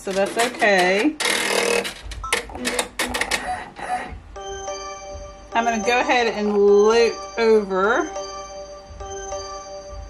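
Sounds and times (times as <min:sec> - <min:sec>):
embroidery machine clicking: 0:00.0 - 0:04.2
background music: 0:00.0 - 0:10.0
steady held chord: 0:04.2 - 0:10.0.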